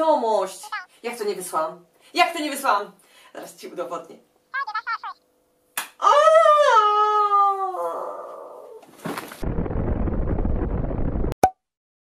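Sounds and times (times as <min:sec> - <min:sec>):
woman's long falling ooo: 0:06.0 - 0:08.9
deep explosion rumble: 0:09.4 - 0:11.4.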